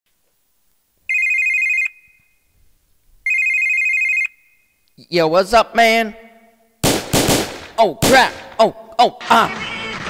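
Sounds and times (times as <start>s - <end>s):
telephone warbling ring: 1.1s - 2.2s, 3.3s - 4.6s.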